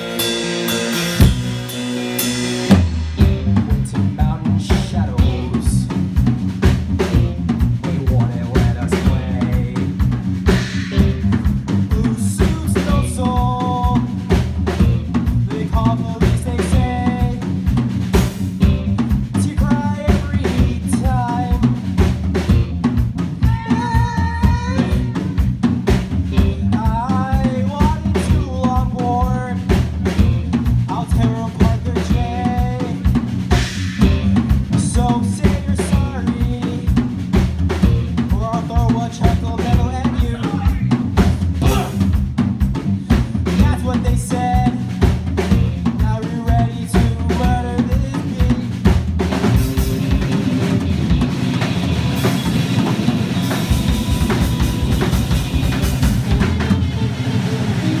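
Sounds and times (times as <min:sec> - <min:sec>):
electric guitar line: 0:00.0 - 0:06.2, 0:06.8 - 0:36.8, 0:47.4 - 0:58.0
bass guitar: 0:00.0 - 0:58.0
busy drum kit: 0:00.0 - 0:58.0.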